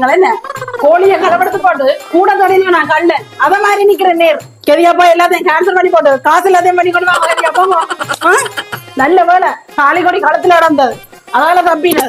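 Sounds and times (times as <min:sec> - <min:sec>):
woman talking loudly and fast: 0:00.0 - 0:12.0.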